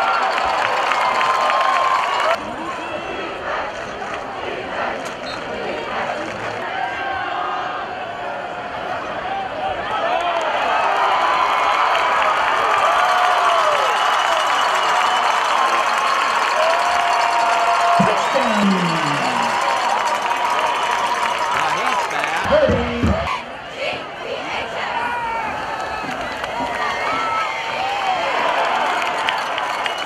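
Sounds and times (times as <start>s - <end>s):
crowd cheering and shouting: 0.0s - 5.0s, 6.0s - 30.0s.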